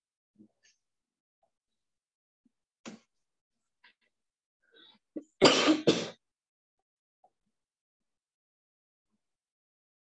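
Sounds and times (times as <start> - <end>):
person coughing: 5.2 - 6.2.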